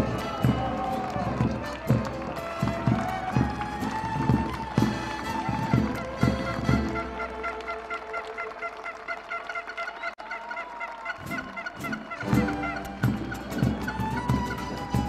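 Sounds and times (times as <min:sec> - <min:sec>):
rhythmic foot stomps: 0:00.0 - 0:07.7, 0:11.2 - 0:15.0
instrumental folk music: 0:00.0 - 0:15.0.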